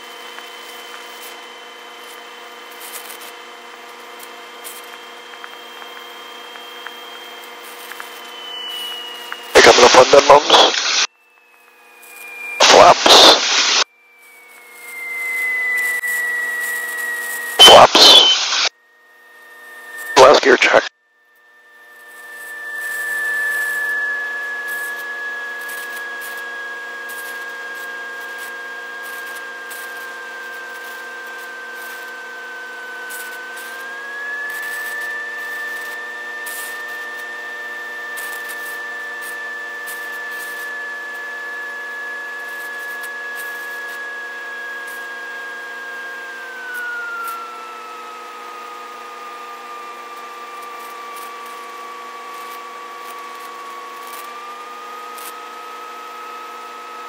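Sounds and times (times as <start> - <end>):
propeller plane engine: 8.0 - 18.7.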